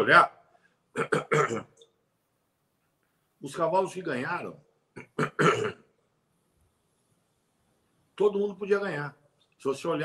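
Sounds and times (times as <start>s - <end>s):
man clearing his throat: 1.0s - 1.8s, 5.0s - 5.9s.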